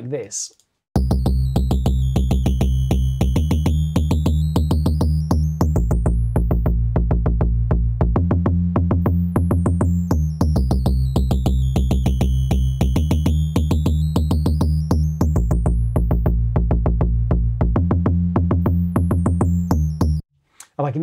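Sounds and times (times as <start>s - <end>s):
bitcrushed synth bassline: 1.0s - 20.2s
electronic rhythm: 1.0s - 20.2s.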